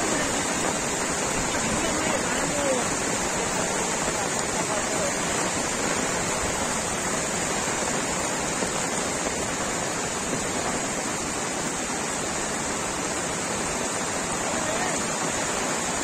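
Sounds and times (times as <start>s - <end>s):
floodwater roaring: 0.0s - 16.0s
heavy rain: 0.0s - 16.0s.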